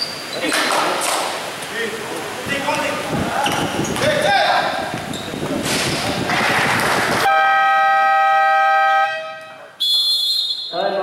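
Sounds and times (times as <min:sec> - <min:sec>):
loud burst of noise: 0:05.6 - 0:07.4
game horn blast: 0:07.3 - 0:10.3
short high referee whistle: 0:09.8 - 0:10.8.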